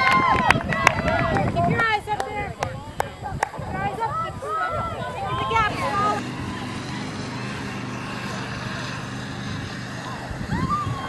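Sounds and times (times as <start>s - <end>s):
spectators shouting encouragement: 0.0s - 2.0s, 3.7s - 11.0s
wind noise on microphone: 0.0s - 11.0s
steady low hum: 1.4s - 11.0s.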